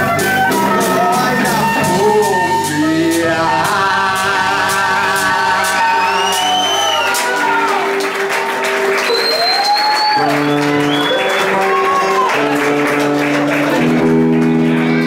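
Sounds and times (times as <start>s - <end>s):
audience whistling: 0.0s - 13.9s
bass: 0.0s - 15.0s
live band sustained chords: 0.0s - 15.0s
audience applauding: 4.4s - 15.0s.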